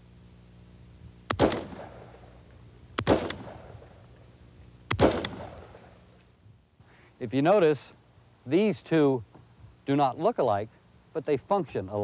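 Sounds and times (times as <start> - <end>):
rifle shots echoing: 1.3 - 2.4, 3.0 - 4.1, 4.9 - 6.0.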